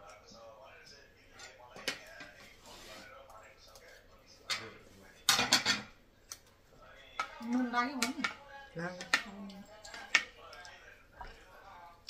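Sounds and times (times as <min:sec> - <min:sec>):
spoon clinking on a plate: 0:07.2 - 0:10.7.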